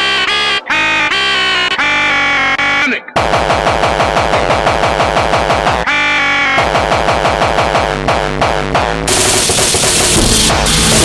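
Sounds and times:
distorted kick drums: 7.3 - 11.0
buzzing synth chord: 9.1 - 11.0.

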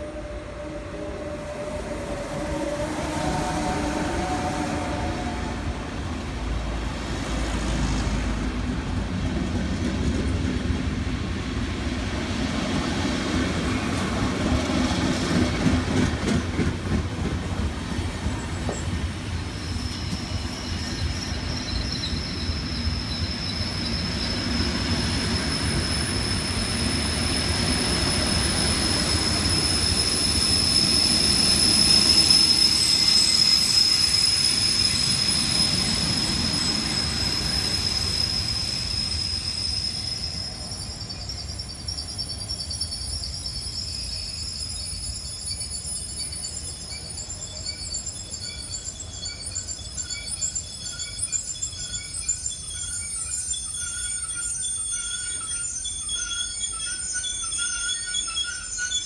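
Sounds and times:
train wheels rumbling and clicking: 5.9 - 59.0
high-pitched wheel squeal: 18.6 - 59.0.

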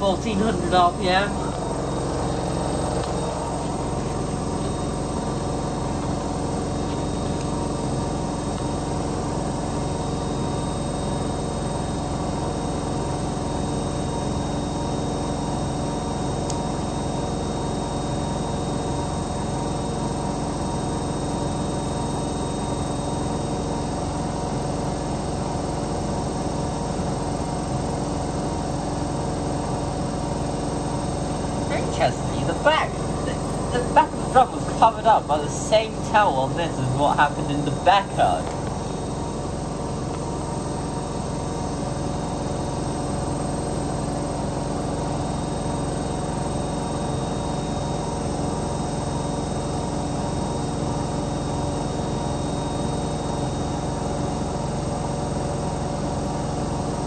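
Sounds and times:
washing machine spin whine: 0.0 - 57.0.

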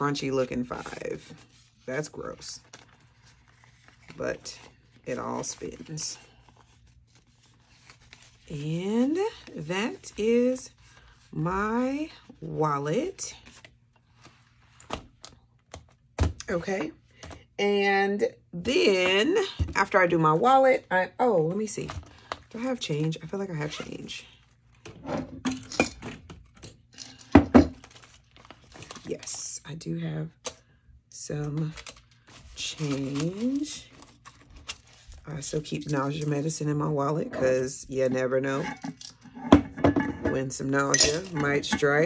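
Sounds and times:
paper banknote rustling: 2.6 - 8.5, 31.8 - 35.2.

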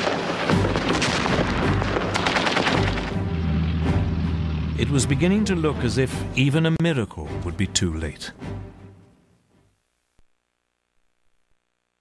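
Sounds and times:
rapid machine-gun and rifle fire: 0.0 - 3.1
low steady rumble: 3.2 - 6.4.

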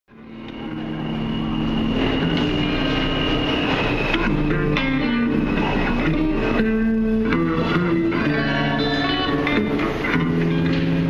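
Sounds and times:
subway train rumble and whine: 0.1 - 11.0.

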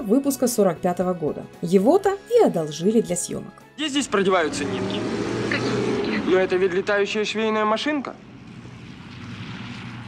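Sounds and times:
propeller aircraft engine drone: 8.2 - 10.0.

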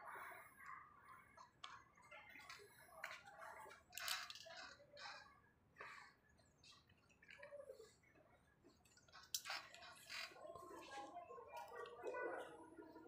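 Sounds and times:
clothes hangers clicking on rail: 3.9 - 5.1.

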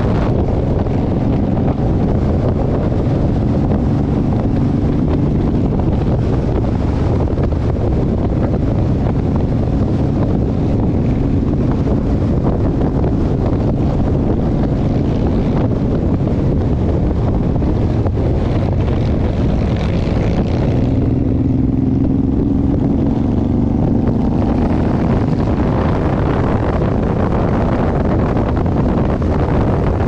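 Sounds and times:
motorcycle engine running: 0.0 - 30.0
wind rushing over microphone: 0.0 - 30.0.

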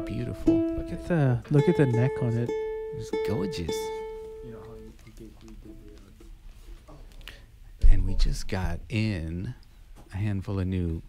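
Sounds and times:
ukulele note ringing: 0.0 - 4.9
soft talk: 0.0 - 11.0.

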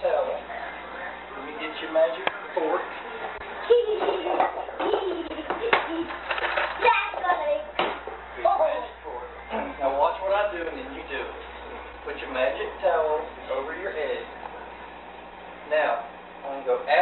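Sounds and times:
indistinct talking: 0.0 - 17.0
child's voice: 6.8 - 7.8.

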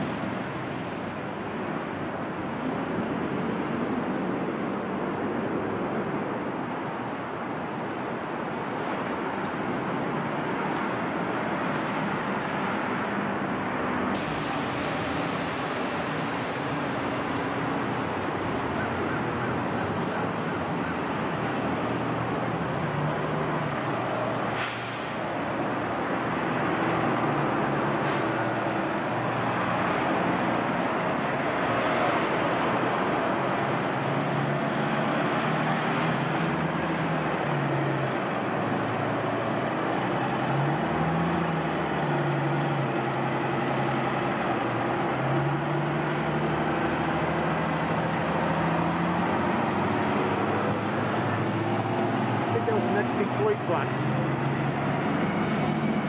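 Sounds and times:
bus diesel engine accelerating: 0.0 - 56.0
street traffic: 0.0 - 56.0.

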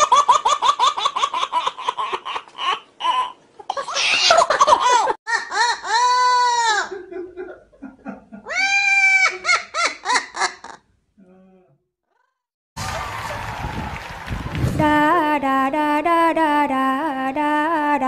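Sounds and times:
baby laughing: 0.0 - 7.1.

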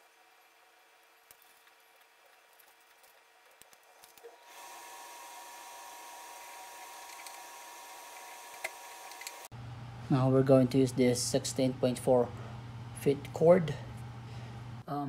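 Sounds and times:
steady hiss with high hum: 0.0 - 15.0.

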